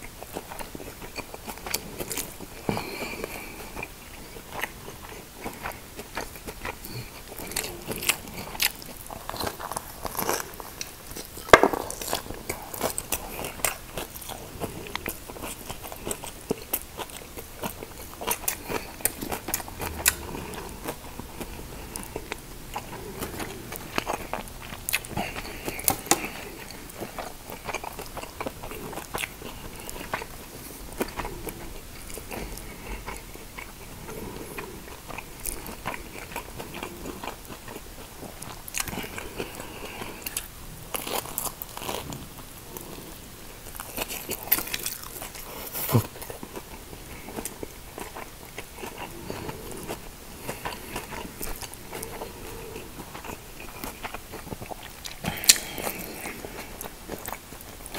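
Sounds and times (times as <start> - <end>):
biting and chewing: 0.0 - 57.9
wet mouth clicks: 55.0 - 56.0.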